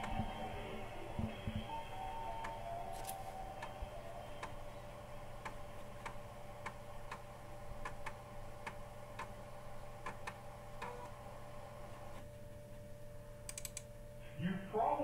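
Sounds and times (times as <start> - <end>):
held musical tone: 0.0 - 6.0
steady low hum: 0.0 - 15.0.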